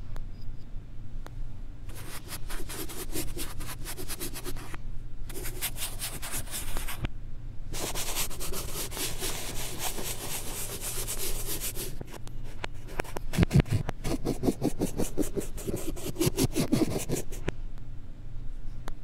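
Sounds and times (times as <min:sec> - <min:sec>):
reversed chalk scratching on blackboard: 0:01.9 - 0:07.0, 0:07.8 - 0:17.5.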